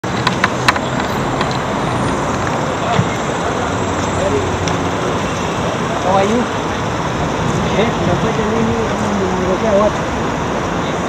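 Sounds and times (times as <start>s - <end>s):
city street traffic: 0.0s - 11.0s.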